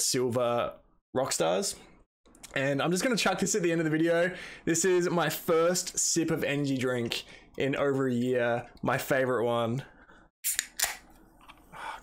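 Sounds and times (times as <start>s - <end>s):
can pull tab cracking open: 10.5s - 11.1s.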